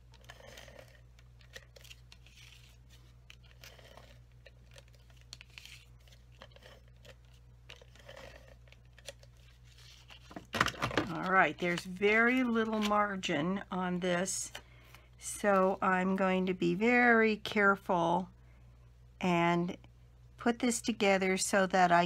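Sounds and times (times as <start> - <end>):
soft paper handling: 0.0 - 13.4.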